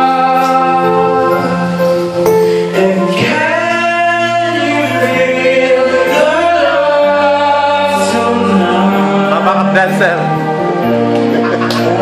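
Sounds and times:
person singing into a microphone: 0:00.0 - 0:10.9
karaoke backing track: 0:00.0 - 0:12.0.

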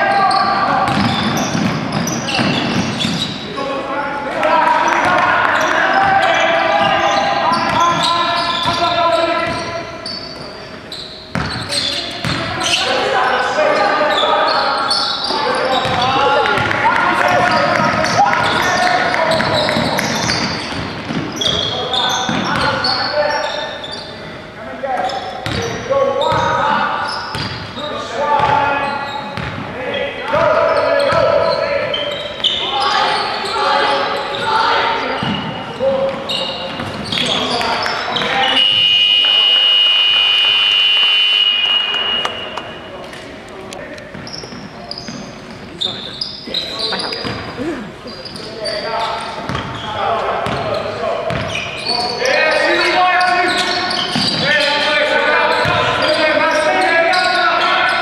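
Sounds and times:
players calling out: 0:00.0 - 0:24.2, 0:44.2 - 0:58.0
basketball bouncing on wooden court: 0:00.3 - 0:03.3, 0:11.3 - 0:12.6, 0:15.7 - 0:21.7, 0:22.3 - 0:22.7, 0:25.4 - 0:26.5, 0:27.3 - 0:27.6, 0:28.4 - 0:28.6, 0:29.3 - 0:29.6, 0:49.4 - 0:49.8, 0:50.4 - 0:50.6, 0:51.3 - 0:51.6.

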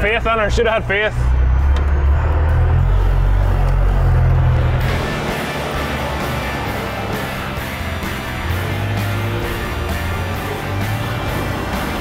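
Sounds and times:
background music: 0:00.0 - 0:12.0
diesel engine running: 0:00.0 - 0:12.0.

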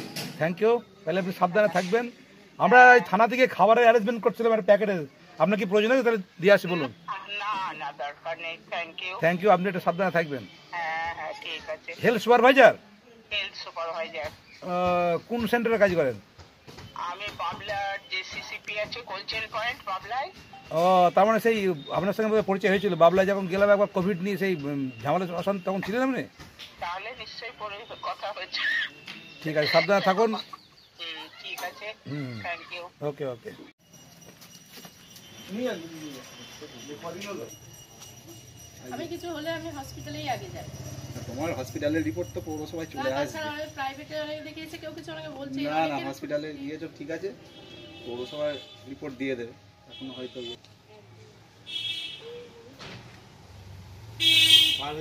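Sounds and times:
man speaking: 0:00.4 - 0:10.5, 0:29.4 - 0:30.6, 0:48.0 - 0:50.6.

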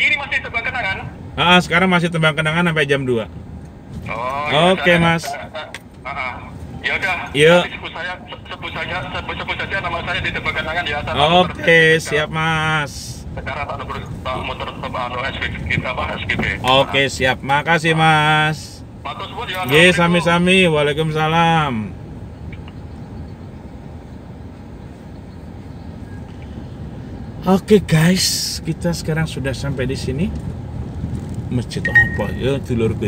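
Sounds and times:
man talking over phone: 0:00.0 - 0:03.3, 0:04.0 - 0:22.0, 0:31.5 - 0:33.0
car running and road rumble: 0:00.0 - 0:33.0.

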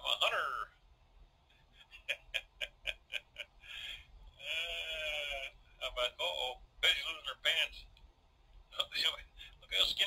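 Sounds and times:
man laughing: 0:01.6 - 0:05.5.

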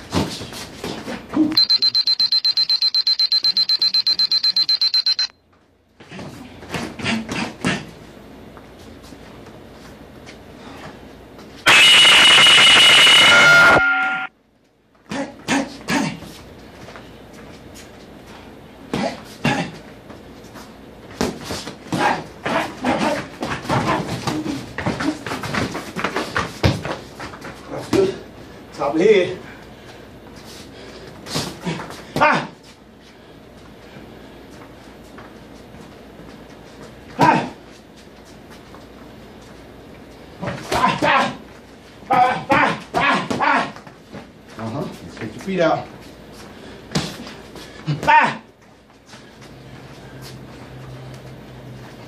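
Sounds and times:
loud electronic buzzer: 0:11.6 - 0:14.3.

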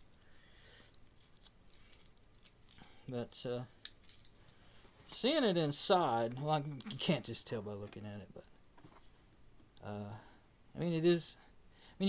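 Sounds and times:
faint small clicks and rustles: 0:00.0 - 0:05.3.

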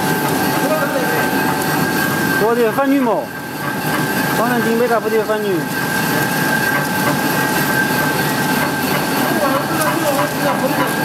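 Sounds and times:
high-pitched machine whine: 0:00.0 - 0:11.0.

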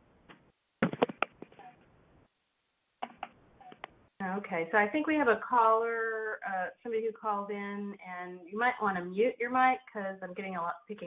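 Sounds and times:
sharp clicks and knocks: 0:00.3 - 0:01.7.

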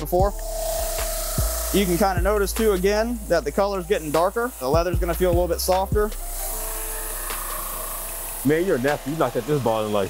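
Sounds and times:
brush wheel scrubbing leather ball: 0:00.0 - 0:10.0.

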